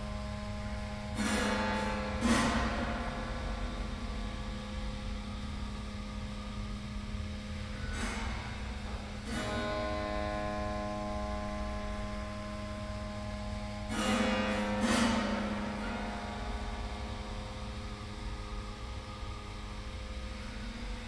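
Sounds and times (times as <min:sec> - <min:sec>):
piano strings ringing: 0:00.0 - 0:21.0
steady low hum: 0:00.0 - 0:21.0.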